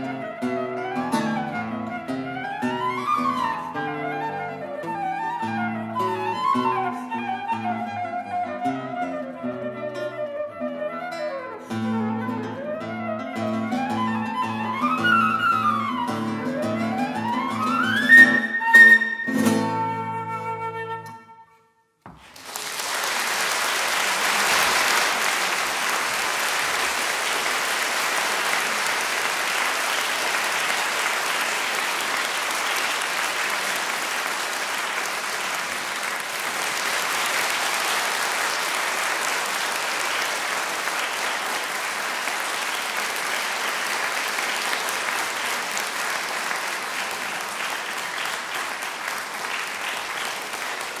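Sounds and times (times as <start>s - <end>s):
audience applauding: 0.0s - 9.2s, 13.4s - 19.2s, 22.1s - 51.0s.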